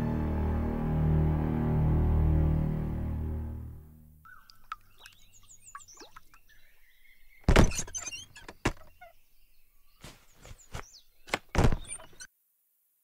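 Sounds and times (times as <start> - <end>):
small birds chirping: 4.2 - 12.3.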